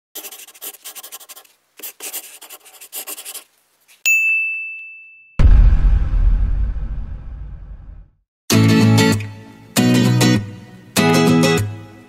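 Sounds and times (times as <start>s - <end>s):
scratchy writing strokes: 0.2s - 4.0s
bell-like ding: 4.1s - 5.6s
loud deep boom: 5.4s - 8.2s.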